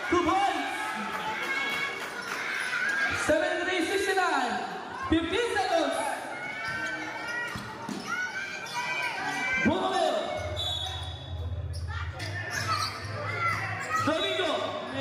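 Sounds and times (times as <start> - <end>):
spectators shouting and talking: 0.0 - 15.0.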